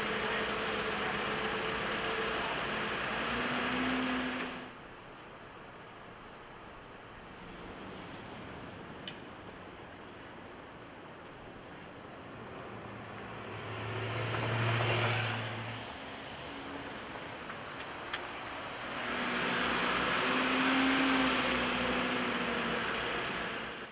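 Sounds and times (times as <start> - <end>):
vehicle engine: 0.0 - 5.1, 11.4 - 23.9
car passing: 12.2 - 23.9.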